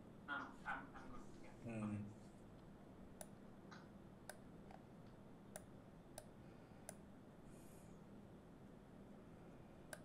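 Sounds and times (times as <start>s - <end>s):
computer mouse clicks: 3.2s - 7.0s.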